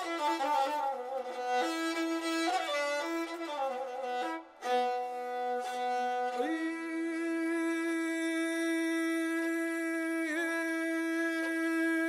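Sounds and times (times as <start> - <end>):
bowed fiddle long note: 0.0 - 8.4.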